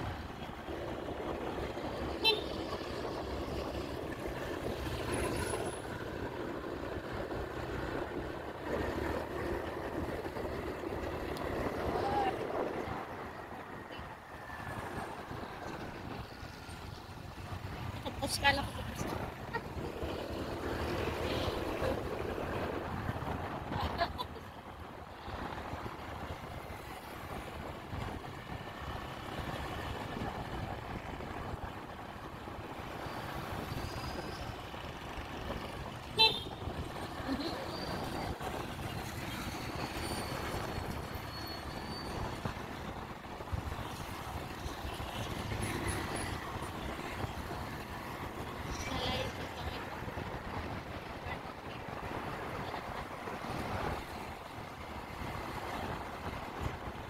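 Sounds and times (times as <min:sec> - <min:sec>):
wind noise on helmet: 0:18.8 - 0:57.0.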